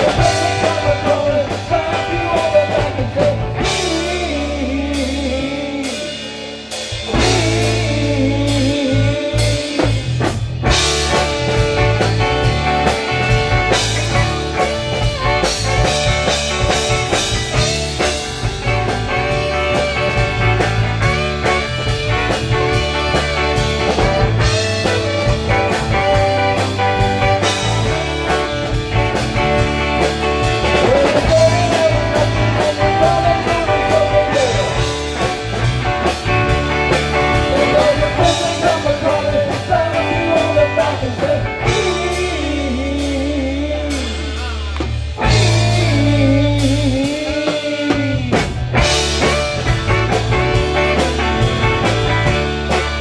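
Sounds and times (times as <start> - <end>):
lead vocal singing: 0.0 - 10.3, 30.6 - 35.1, 37.2 - 48.6
rock band playing: 0.0 - 53.0
wavering lead guitar line: 0.0 - 53.0.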